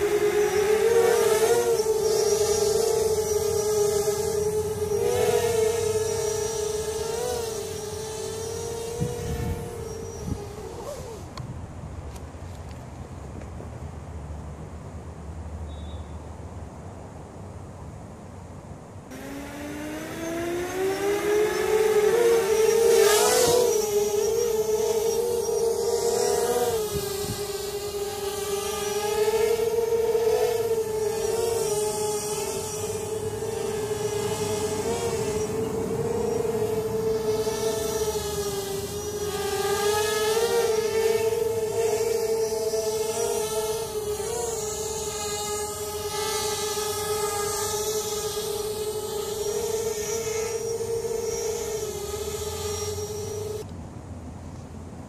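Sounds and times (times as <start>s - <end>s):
quadcopter propellers buzzing: 0.0s - 12.2s, 19.1s - 53.7s.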